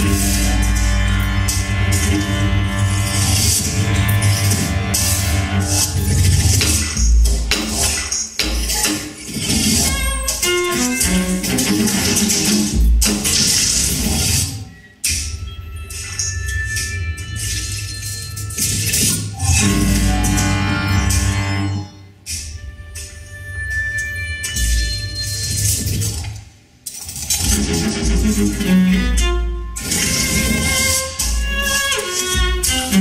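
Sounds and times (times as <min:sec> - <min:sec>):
low pitched cello notes: 0:00.0 - 0:06.6, 0:19.4 - 0:22.2, 0:27.4 - 0:33.0
electroacoustic music: 0:00.0 - 0:33.0.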